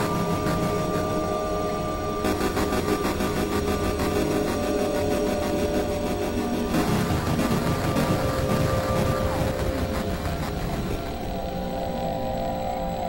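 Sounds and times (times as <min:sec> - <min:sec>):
synthesizer drone music: 0:00.0 - 0:13.0.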